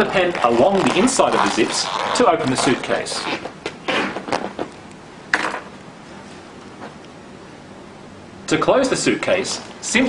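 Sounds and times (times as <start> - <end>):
zipper rasping: 0.0 - 4.8.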